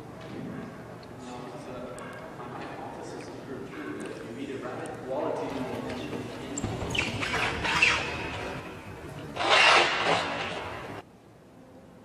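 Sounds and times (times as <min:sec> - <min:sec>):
voices: 0:01.1 - 0:09.6.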